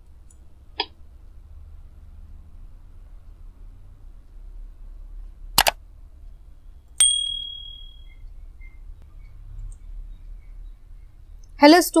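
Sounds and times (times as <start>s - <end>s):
bright bell ding: 7.0s - 8.2s.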